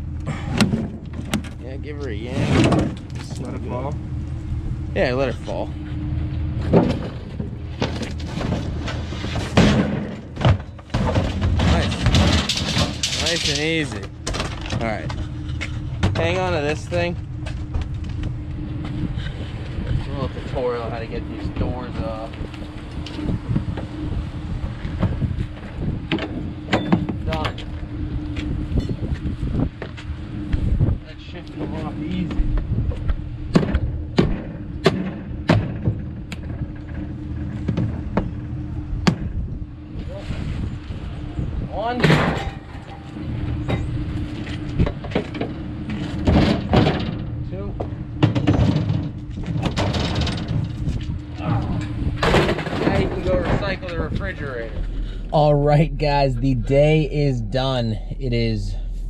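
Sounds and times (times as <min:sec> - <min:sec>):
engine idling: 0:00.0 - 0:59.0
steady low hum: 0:00.0 - 0:59.0.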